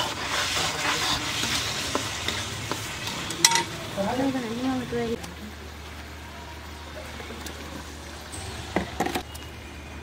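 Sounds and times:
ladle scraping pan: 0.0s - 3.7s
gravy sizzling in wok: 0.0s - 10.0s.

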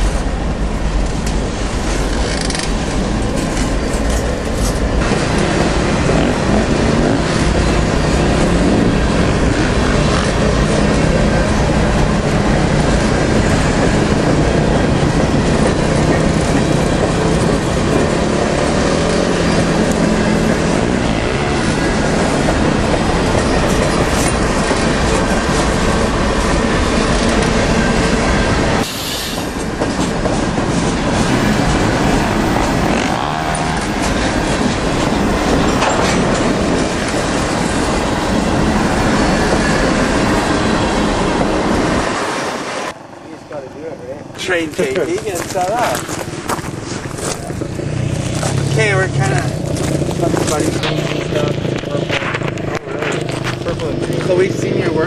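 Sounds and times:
freight train wheels on rail: 0.0s - 55.0s.

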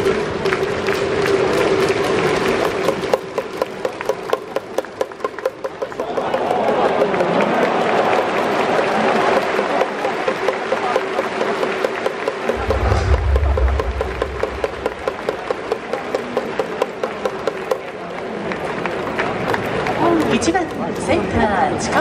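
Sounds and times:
crowd clapping in rhythm: 0.0s - 12.6s, 14.2s - 21.0s
general crowd noise: 0.0s - 22.0s
low rumble: 12.5s - 15.9s.

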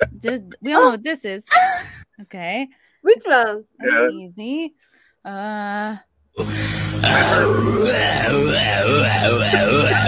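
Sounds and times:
voice-like sound wavering in pitch: 6.4s - 10.0s.

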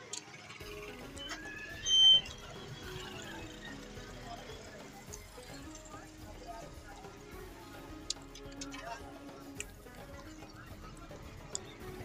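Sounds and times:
background music: 0.0s - 12.0s
street murmur: 0.0s - 12.0s
high-pitched beep: 1.1s - 3.2s.

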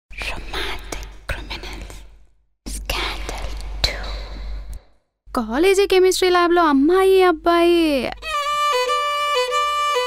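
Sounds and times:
breathy whispering: 0.1s - 5.0s.

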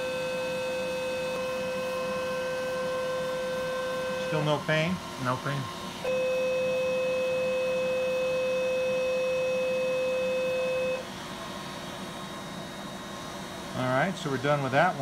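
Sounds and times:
electronic activation tone: 6.0s - 11.0s.

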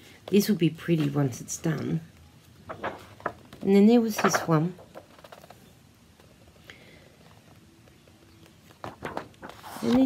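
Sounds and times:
book handling ticks and rustles: 0.2s - 10.0s
page turning: 2.4s - 6.4s, 7.4s - 10.0s.

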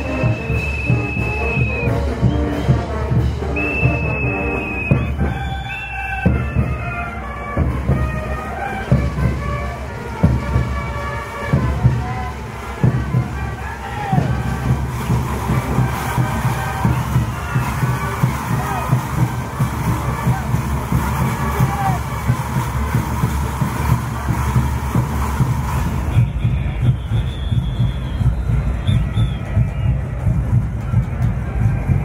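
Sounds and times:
band music with drumbeat: 0.0s - 32.0s
crowd voices and cheers: 0.0s - 32.0s.

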